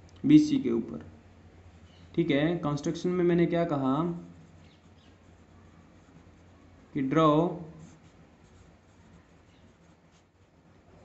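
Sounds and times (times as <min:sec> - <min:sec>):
pencil scratching on paper: 0:04.0 - 0:07.0, 0:07.7 - 0:10.6.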